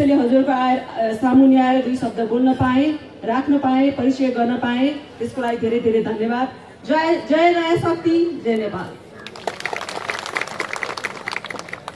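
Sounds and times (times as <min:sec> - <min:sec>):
audience applauding: 0:09.2 - 0:11.9.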